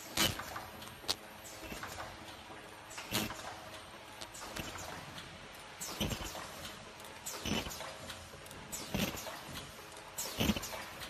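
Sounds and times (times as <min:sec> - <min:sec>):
machine mechanism clacking: 0:00.0 - 0:11.0.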